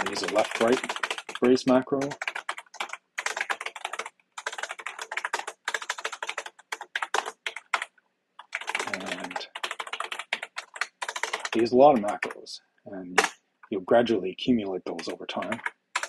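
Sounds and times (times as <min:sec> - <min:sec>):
fast typing on keyboard: 0:00.0 - 0:12.5, 0:13.2 - 0:13.4, 0:14.9 - 0:16.0.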